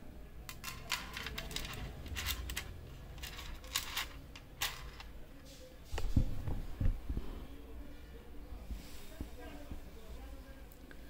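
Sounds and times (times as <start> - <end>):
jewellery clinking and jingling: 0.5 - 5.1.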